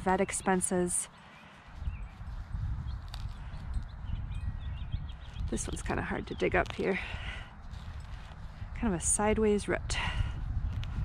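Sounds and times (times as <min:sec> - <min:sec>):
weeder thudding and scraping soil: 0:05.4 - 0:11.0.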